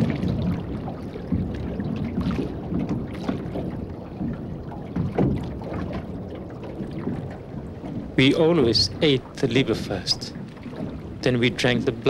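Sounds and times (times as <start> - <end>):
water slapping against metal hull: 0.0 - 12.0
wind on microphone: 0.0 - 12.0.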